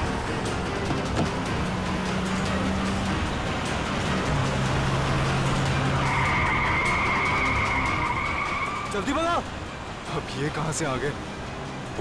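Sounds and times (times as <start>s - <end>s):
car engine running hard: 0.0s - 10.3s
tyres skidding: 0.0s - 12.0s.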